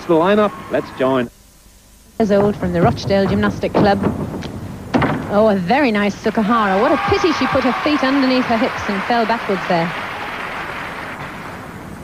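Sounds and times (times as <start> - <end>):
audience applauding: 6.6 - 11.8.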